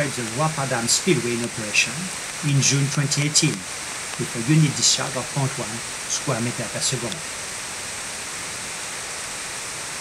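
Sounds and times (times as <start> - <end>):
water rushing over spillway: 0.0 - 10.0.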